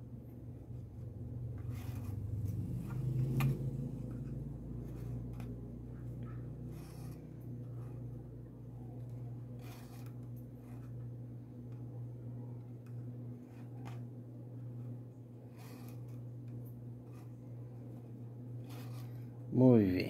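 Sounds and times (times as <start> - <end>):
low hum: 0.0 - 20.0
threads rubbing and scraping: 0.6 - 12.0, 12.8 - 14.1, 14.7 - 19.5.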